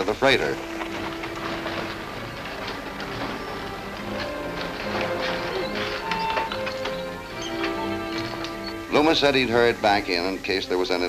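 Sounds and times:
hooves clopping: 0:00.0 - 0:11.0
wagon rattling: 0:00.0 - 0:11.0.

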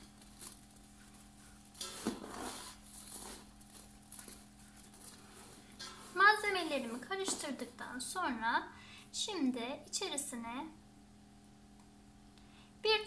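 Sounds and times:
steady low hum: 0:00.0 - 0:13.0
scuff on metal tray: 0:01.8 - 0:03.5, 0:05.0 - 0:07.8.

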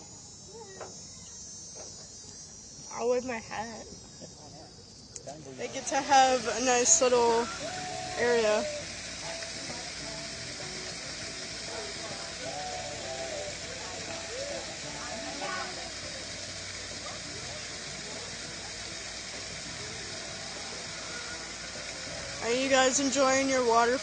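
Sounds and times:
faint voices: 0:02.9 - 0:24.0
water falling into a pond: 0:06.4 - 0:24.0.

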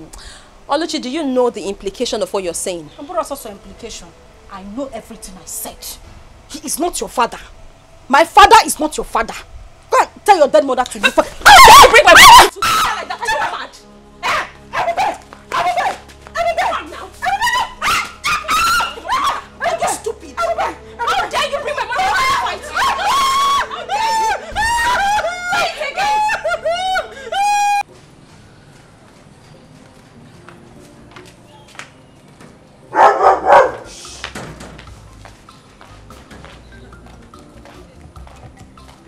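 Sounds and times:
women shouting and crying: 0:11.0 - 0:27.9
dog barking: 0:14.2 - 0:16.0, 0:32.9 - 0:33.9.

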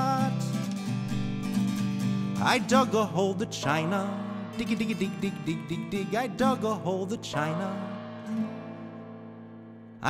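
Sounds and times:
strummed guitar chord: 0:00.0 - 0:10.0.

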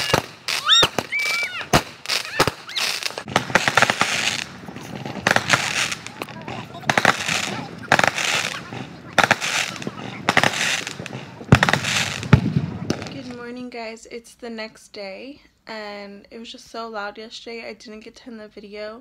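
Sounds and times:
fireworks bangs: 0:00.0 - 0:13.8
fireworks crackling: 0:00.0 - 0:13.8.

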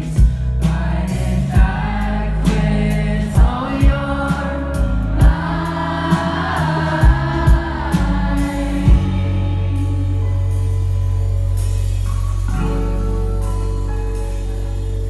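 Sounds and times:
bass guitar: 0:00.0 - 0:15.0
drum kit: 0:00.0 - 0:15.0
electric guitar: 0:00.0 - 0:15.0.

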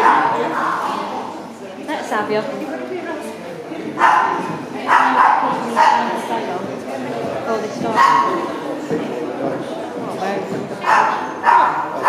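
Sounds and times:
dog barking: 0:00.0 - 0:00.8, 0:04.0 - 0:06.2, 0:08.0 - 0:08.4, 0:10.8 - 0:12.0
murmur of people talking: 0:00.0 - 0:12.0.

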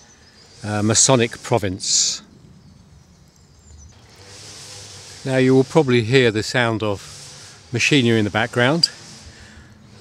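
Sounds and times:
string trimmer running: 0:04.0 - 0:06.2.

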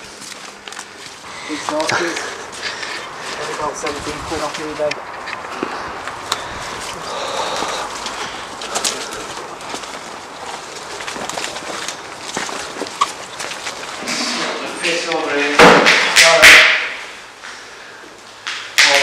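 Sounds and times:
twigs cracking: 0:00.0 - 0:14.1
footsteps through undergrowth: 0:00.0 - 0:15.5
leaves rustling: 0:00.0 - 0:15.6.

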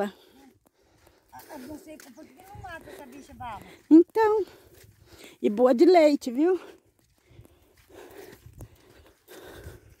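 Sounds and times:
footsteps on dirt track: 0:00.0 - 0:10.0.

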